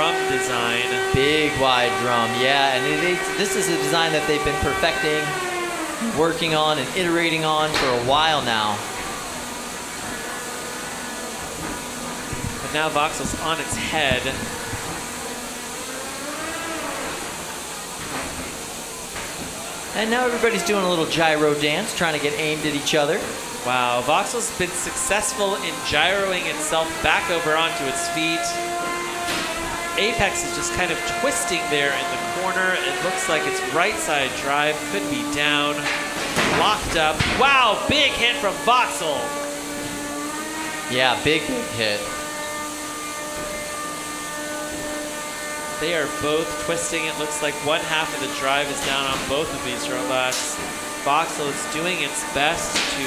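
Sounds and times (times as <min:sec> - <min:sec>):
electric motors running: 0:00.0 - 0:53.0
steady hissing noise: 0:00.0 - 0:53.0
arena noise hiss: 0:16.6 - 0:28.5.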